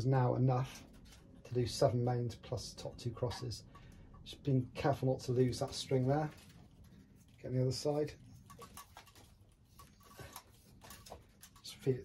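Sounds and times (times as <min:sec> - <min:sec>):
faint ticks and rustles of string: 0:00.0 - 0:12.0.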